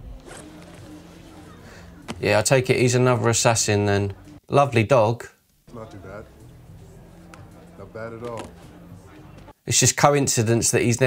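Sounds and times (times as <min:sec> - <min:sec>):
faint low film score tones: 0:00.0 - 0:11.0.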